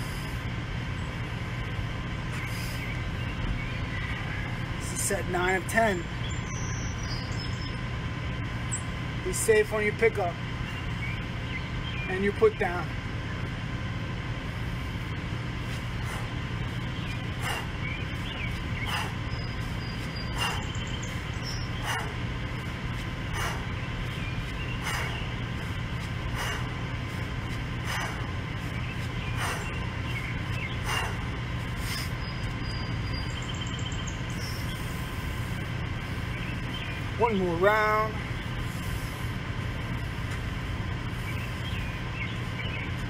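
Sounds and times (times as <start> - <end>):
low background hum: 0.0 - 43.0.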